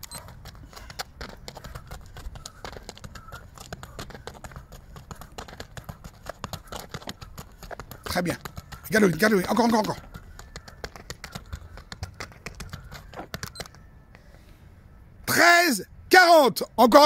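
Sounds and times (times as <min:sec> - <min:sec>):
rapid footsteps on rubber track: 0:00.0 - 0:13.8.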